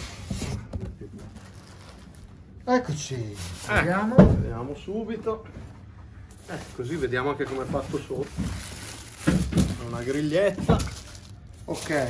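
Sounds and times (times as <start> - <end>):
cardboard carton rustling and scraping: 0.0 - 2.3, 6.3 - 12.0.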